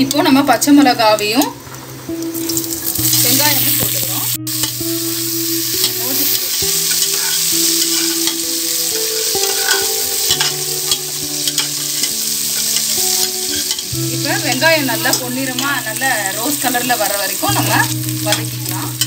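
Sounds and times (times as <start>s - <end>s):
low steady tones: 0.0s - 19.0s
onion frying in hot oil: 0.0s - 19.0s.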